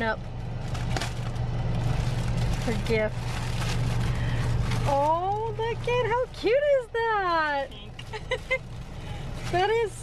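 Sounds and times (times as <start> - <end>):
car low hum: 0.0 - 10.0
plastic bag crinkling: 0.3 - 6.4.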